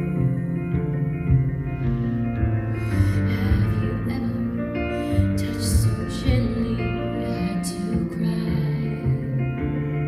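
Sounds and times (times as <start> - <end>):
woman singing a ballad: 0.0 - 1.5, 2.8 - 9.6.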